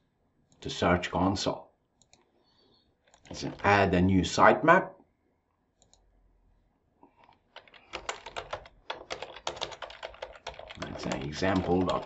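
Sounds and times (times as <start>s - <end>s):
typing on computer keyboard: 7.5s - 12.0s.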